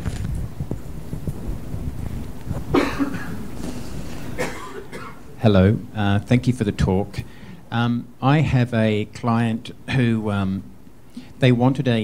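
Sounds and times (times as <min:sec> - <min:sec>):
person coughing: 0:02.7 - 0:03.4, 0:04.3 - 0:05.3.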